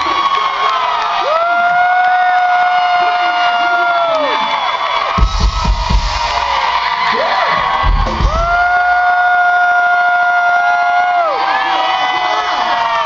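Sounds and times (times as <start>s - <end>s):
crowd cheering: 0.0s - 13.0s
heavy drum hits: 5.2s - 6.6s, 7.5s - 8.9s.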